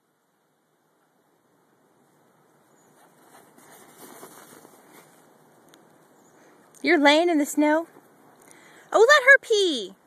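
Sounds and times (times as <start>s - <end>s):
footsteps crunching in snow: 2.8s - 5.6s.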